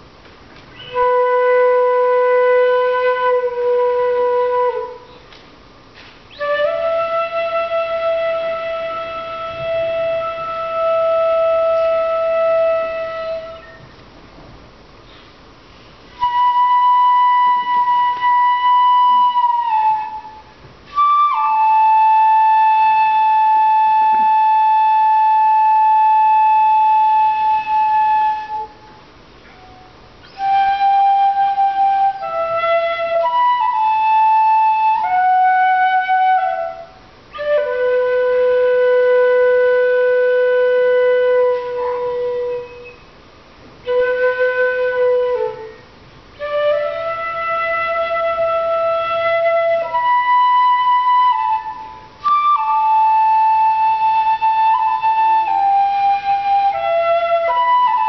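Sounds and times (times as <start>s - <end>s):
bamboo flute long notes: 0.7s - 5.4s, 6.3s - 13.9s, 16.0s - 43.2s, 43.8s - 58.0s.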